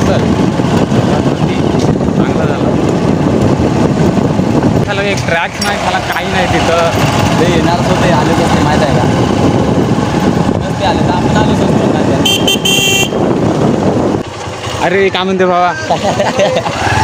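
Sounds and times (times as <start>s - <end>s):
wind buffeting microphone: 0.0s - 15.4s
motorcycle engine: 0.0s - 17.0s
vehicle horn toots: 12.2s - 13.3s.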